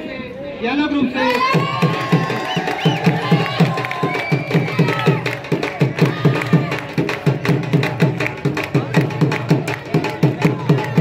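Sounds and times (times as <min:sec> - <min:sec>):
crowd cheering: 0:01.2 - 0:08.3
music with steady drum beat: 0:01.4 - 0:11.0.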